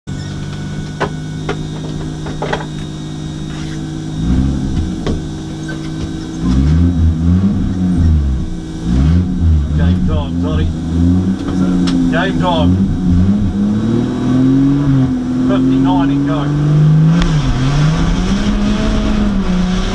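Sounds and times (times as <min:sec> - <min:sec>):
car engine idling and revving: 0:00.0 - 0:19.9.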